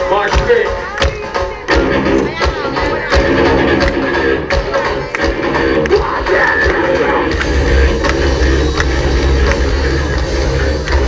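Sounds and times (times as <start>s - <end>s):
live heavy metal band playing: 0.0s - 11.0s.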